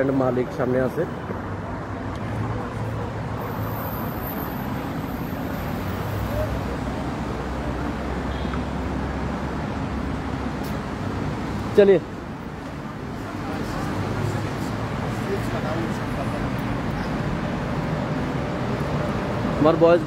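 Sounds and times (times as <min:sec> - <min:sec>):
road traffic noise: 0:00.0 - 0:20.0.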